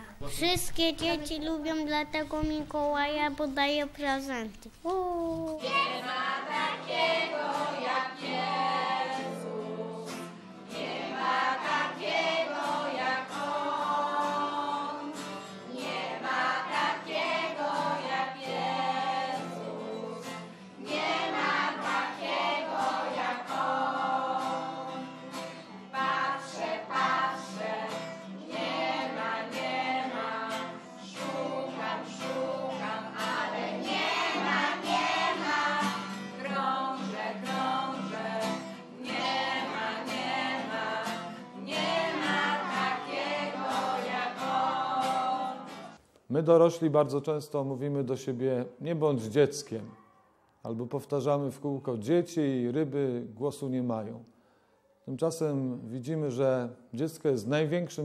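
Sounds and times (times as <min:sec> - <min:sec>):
children and woman singing: 0:04.9 - 0:45.9
strummed acoustic guitar: 0:05.3 - 0:46.0.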